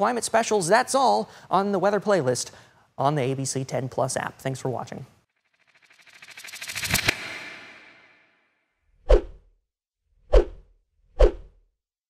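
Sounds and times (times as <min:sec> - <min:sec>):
swooshes: 0:05.5 - 0:08.4.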